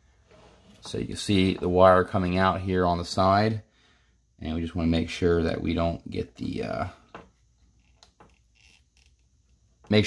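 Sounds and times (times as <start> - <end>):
soft clicks of wire handling: 7.0 - 10.0.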